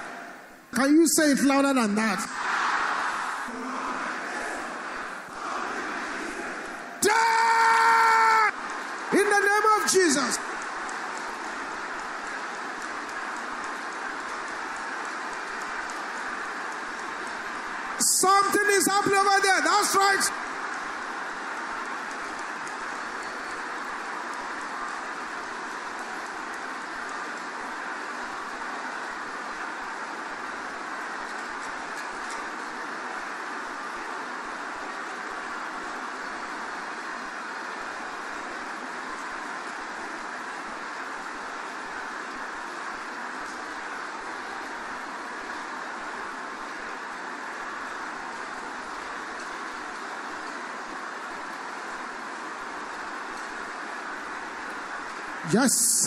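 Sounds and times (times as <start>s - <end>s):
congregation praying aloud: 0.8s - 10.4s, 18.0s - 20.4s, 55.4s - 56.0s.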